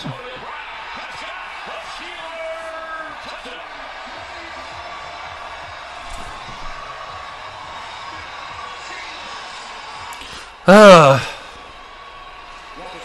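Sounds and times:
stadium crowd noise: 0:00.0 - 0:13.0
commentator talking: 0:10.7 - 0:11.3.

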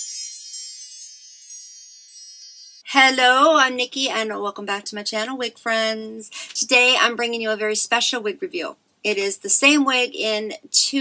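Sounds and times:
shimmering bell-like chime: 0:00.0 - 0:02.9.

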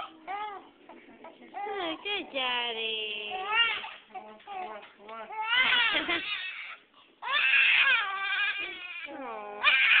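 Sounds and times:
infant crying: 0:05.3 - 0:10.0.

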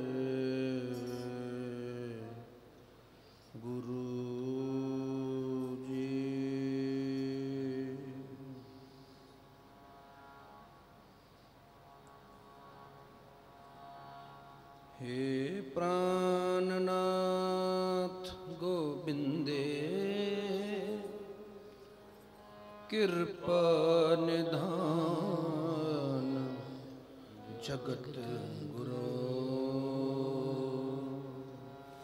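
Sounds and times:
man singing held notes: 0:24.2 - 0:31.3.

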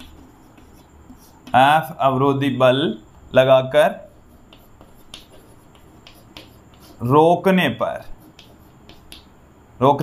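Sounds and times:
chalk tapping on blackboard: 0:00.0 - 0:02.0, 0:03.9 - 0:07.2, 0:07.8 - 0:09.4
faint room hum: 0:00.0 - 0:10.0.

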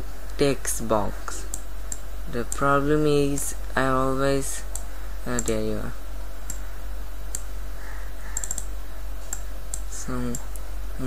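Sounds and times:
low electrical hum: 0:00.0 - 0:11.0
computer mouse clicks: 0:08.3 - 0:08.7, 0:09.3 - 0:10.6.

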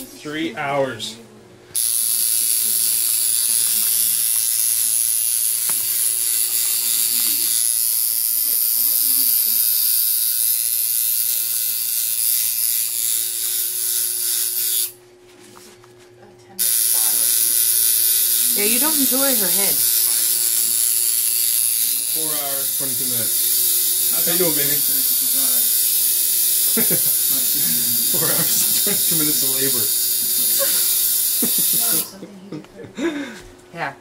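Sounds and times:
tattoo machine buzzing: 0:01.7 - 0:15.0, 0:16.6 - 0:32.2.

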